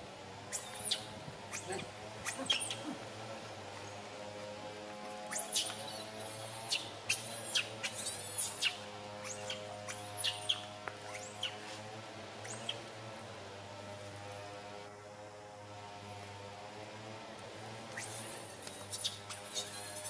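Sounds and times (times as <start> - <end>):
steady background hum: 0.0 - 20.0
baby monkey squealing: 0.5 - 3.0, 5.3 - 10.6, 18.0 - 20.0.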